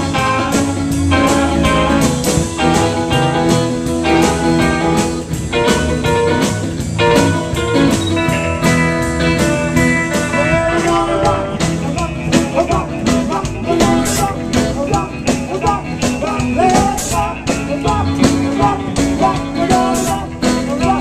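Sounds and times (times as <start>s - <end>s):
electric guitar playing: 0.0s - 21.0s
steady drum beat: 0.0s - 21.0s.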